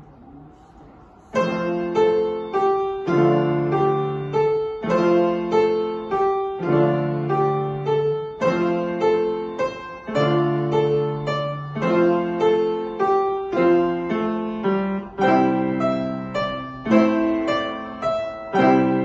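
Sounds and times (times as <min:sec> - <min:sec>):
grand piano piece: 0:00.0 - 0:19.0.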